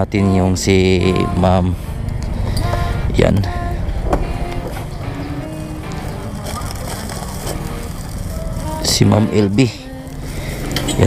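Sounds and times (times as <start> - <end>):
faint background music: 0.0 - 11.0
motor scooter idling: 0.0 - 11.0.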